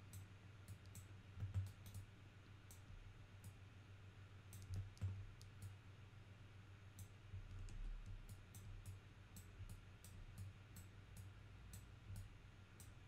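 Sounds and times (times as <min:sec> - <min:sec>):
computer mouse clicks: 0:00.0 - 0:02.1, 0:04.5 - 0:05.8, 0:07.0 - 0:13.0
low steady hum: 0:00.0 - 0:13.0.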